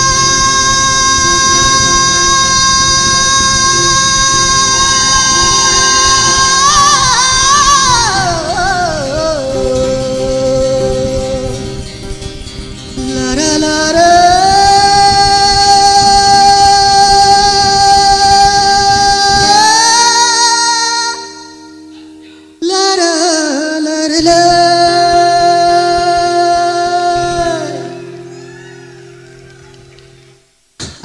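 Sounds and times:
man singing long high note: 0.0 - 11.9, 13.0 - 29.0
strummed acoustic guitar: 0.0 - 31.0.

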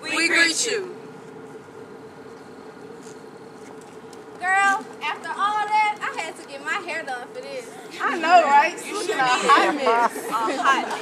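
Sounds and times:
steady buzzing hum: 0.0 - 11.0.

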